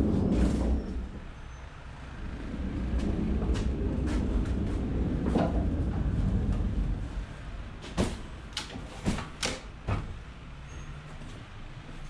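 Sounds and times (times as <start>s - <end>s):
pallet truck rolling rumble: 0.0s - 10.4s.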